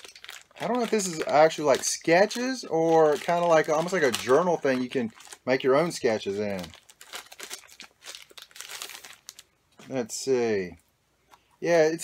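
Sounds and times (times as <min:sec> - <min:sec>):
packaging crinkling and rustling: 0:00.0 - 0:09.6.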